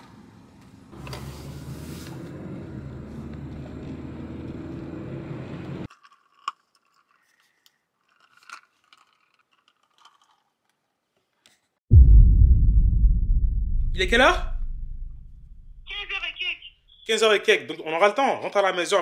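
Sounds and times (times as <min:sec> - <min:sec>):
road noise: 0:01.0 - 0:05.9
faint clicks and scrapes: 0:05.9 - 0:11.8.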